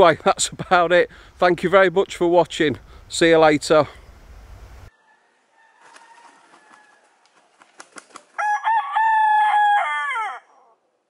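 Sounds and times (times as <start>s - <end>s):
rooster crowing: 4.9s - 7.2s, 8.4s - 10.8s.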